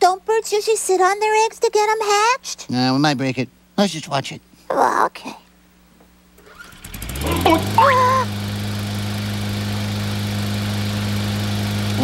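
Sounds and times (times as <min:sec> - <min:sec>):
lawn mower engine running: 0:06.4 - 0:12.0.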